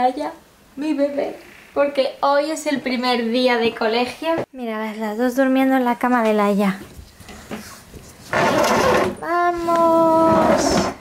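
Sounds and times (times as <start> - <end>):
roller shutter rattling up: 8.3 - 9.2.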